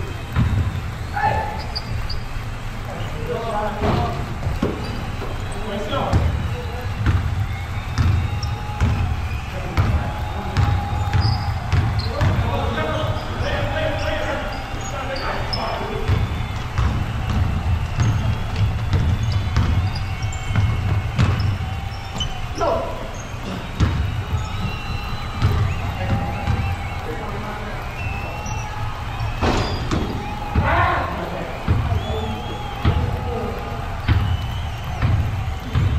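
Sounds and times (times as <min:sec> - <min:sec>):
basketball dribbling: 0:00.0 - 0:35.9
players' indistinct calls: 0:00.0 - 0:35.9
sneaker squeaks: 0:00.0 - 0:35.9
footsteps running: 0:00.1 - 0:35.9.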